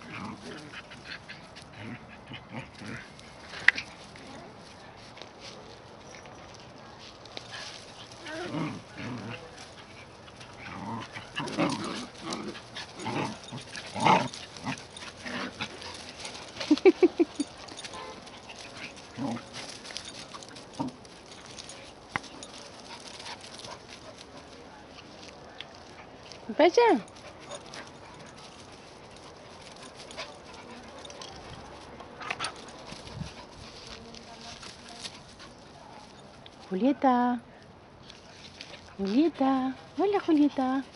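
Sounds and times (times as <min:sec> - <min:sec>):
dogs play-fighting: 0:00.0 - 0:36.7, 0:37.8 - 0:40.9.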